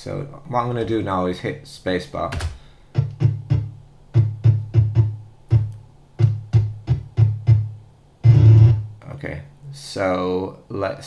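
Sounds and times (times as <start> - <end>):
short struck notes over bass: 3.0 - 9.0.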